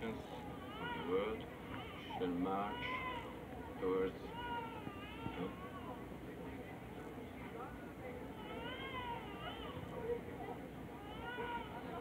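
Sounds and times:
newborn baby crying: 0.4s - 3.4s, 4.3s - 6.0s, 11.0s - 11.9s.

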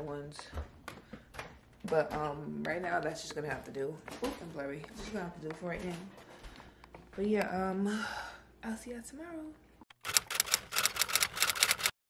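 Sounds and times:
rapid typing clicks: 9.9s - 12.0s.

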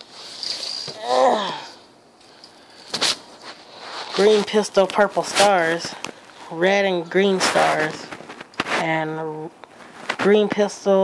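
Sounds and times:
faint background noise: 0.0s - 11.0s.

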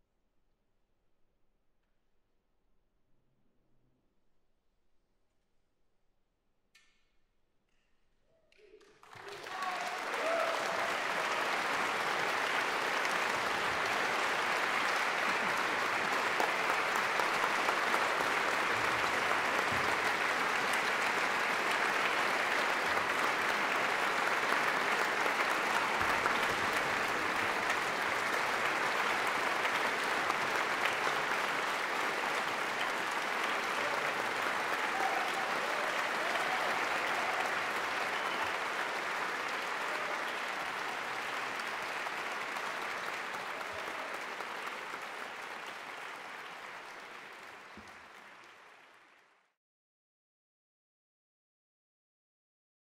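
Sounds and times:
large audience applauding: 8.8s - 49.6s.

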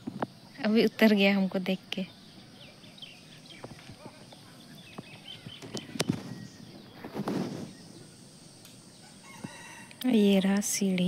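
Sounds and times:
faint outdoor background: 0.0s - 11.0s
rustling scrape: 6.0s - 7.9s.

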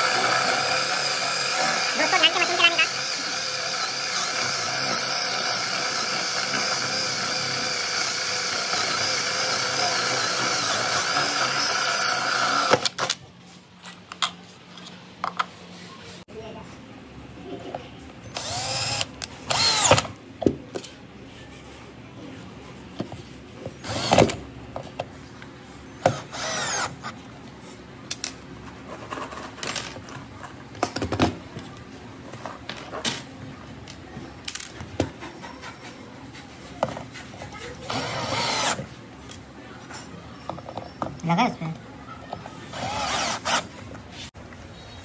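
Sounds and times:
cordless drill driving screws: 0.0s - 13.0s, 18.3s - 20.0s, 23.8s - 24.4s, 26.1s - 26.9s, 37.9s - 38.8s, 42.7s - 43.8s.

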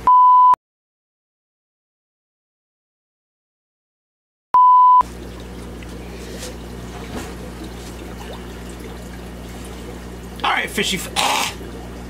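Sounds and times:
low equipment hum: 5.0s - 12.0s
trickling water: 5.0s - 12.0s.

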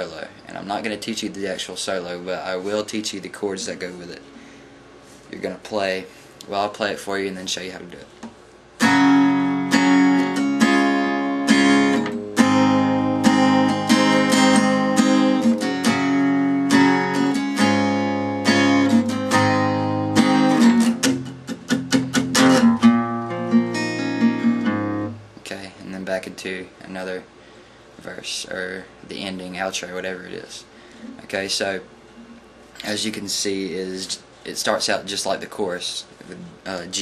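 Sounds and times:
acoustic guitar strumming: 8.8s - 25.4s.

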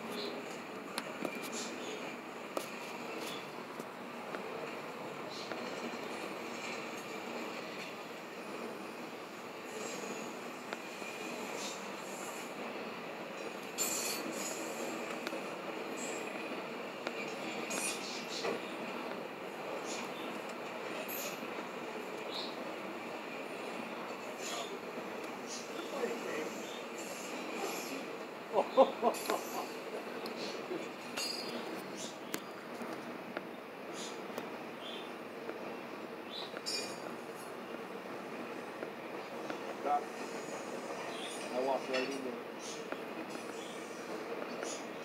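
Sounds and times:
steel wheels rumbling on rail: 0.0s - 45.0s.

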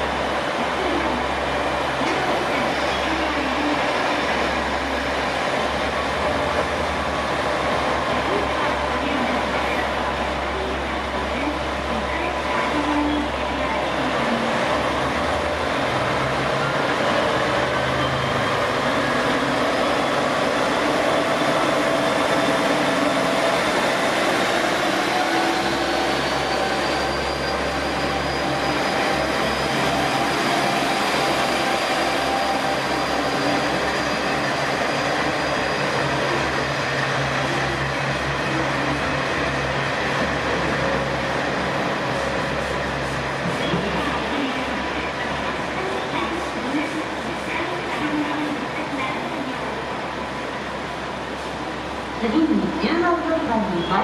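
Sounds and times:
diesel train engine accelerating: 13.2s - 54.0s.

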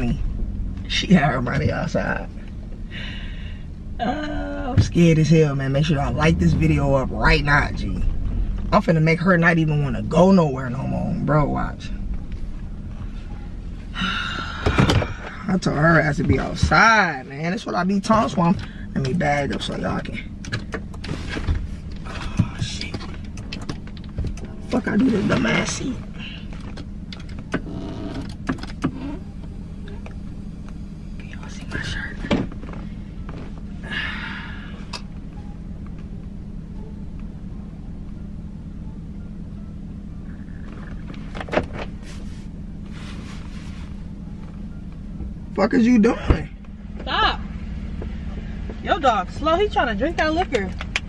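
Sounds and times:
car engine idling: 0.0s - 51.0s
steady low hum: 0.0s - 51.0s.

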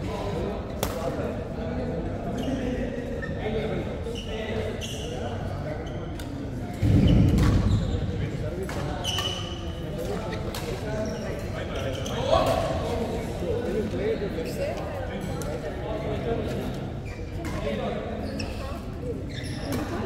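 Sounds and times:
dull low thump: 6.8s - 8.5s.

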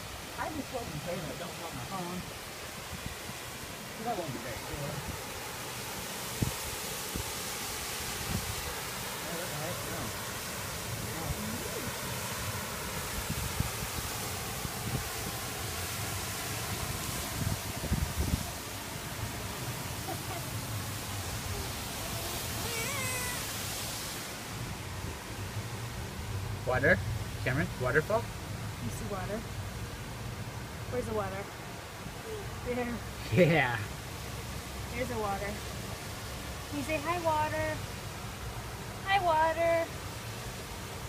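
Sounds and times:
waterfall rushing: 0.0s - 41.0s
small child crying: 22.5s - 23.5s.

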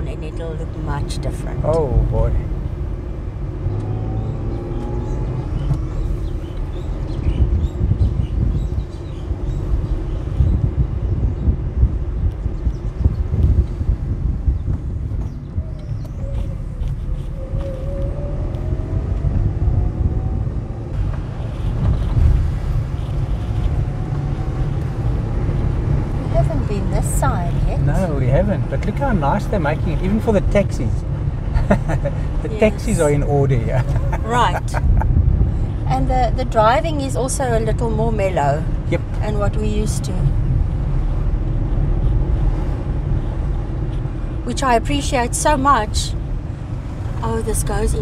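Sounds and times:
faint car engine tone: 0.0s - 48.0s
road and wind noise: 0.0s - 48.0s.

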